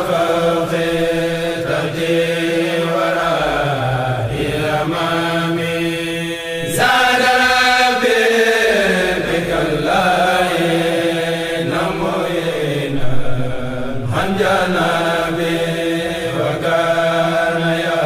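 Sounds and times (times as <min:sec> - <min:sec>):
man chanting religious poem: 0:00.0 - 0:18.0.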